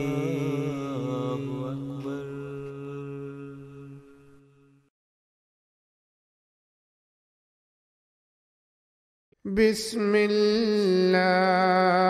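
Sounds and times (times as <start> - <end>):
chanted vocal line: 0.0 - 4.8.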